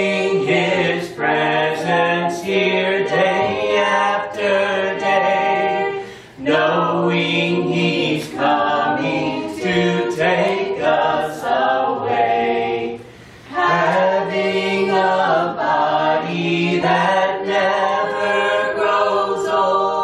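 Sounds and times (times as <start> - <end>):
group singing a cappella hymn: 0.0 - 20.0.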